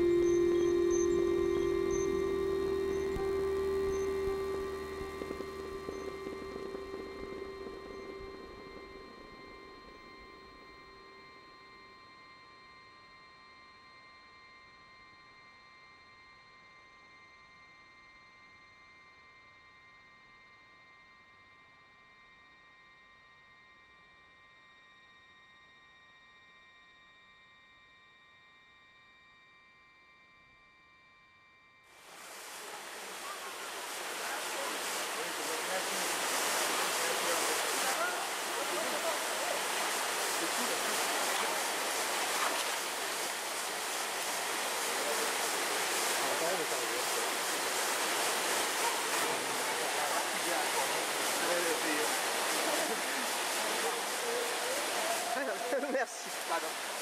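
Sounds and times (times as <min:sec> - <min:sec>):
soft held background music: 0:00.0 - 0:11.9
waterfall rushing over rocks: 0:32.0 - 0:57.0.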